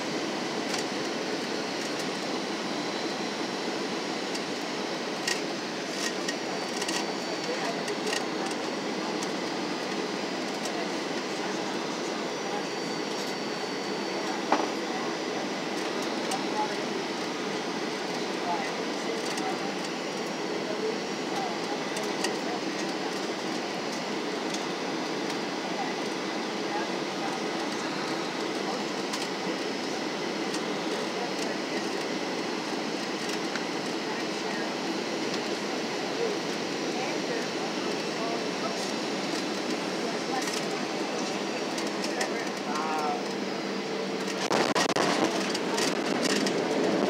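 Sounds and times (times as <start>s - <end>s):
aircraft cabin engine and airflow noise: 0.0s - 47.0s.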